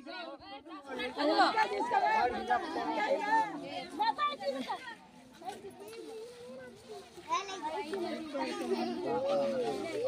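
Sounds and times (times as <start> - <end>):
crowd of people talking: 0.0 - 10.0.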